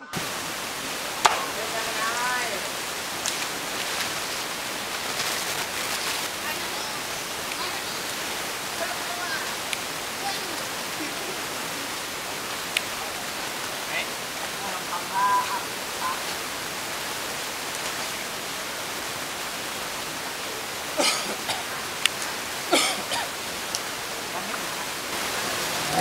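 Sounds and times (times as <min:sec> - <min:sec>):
faint voices: 0:00.0 - 0:16.5
water rushing: 0:00.0 - 0:26.0.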